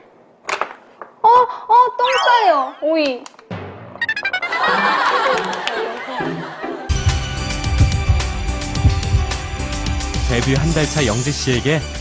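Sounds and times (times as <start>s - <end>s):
comic honk sound effects: 3.9s - 5.0s.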